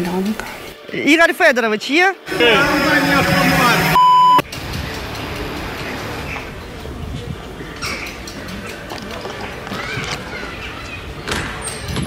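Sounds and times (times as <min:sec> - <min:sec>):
high censor bleep: 0:03.9 - 0:04.4.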